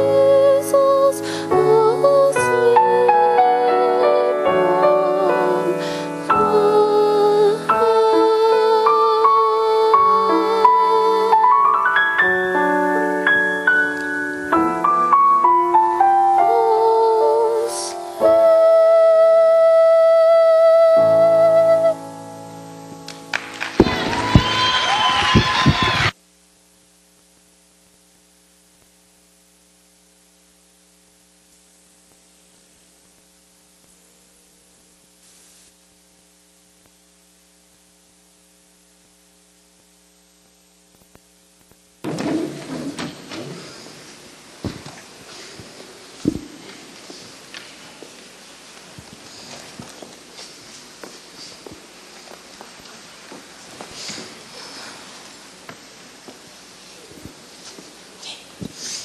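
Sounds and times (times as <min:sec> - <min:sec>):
girl singing: 0:00.0 - 0:13.2, 0:15.9 - 0:22.2
faint steady hum: 0:00.0 - 0:59.0
audience applause and cheering: 0:23.1 - 0:26.2
rustling and knocking on stage: 0:23.7 - 0:24.7, 0:42.0 - 0:43.9, 0:44.6 - 0:46.8.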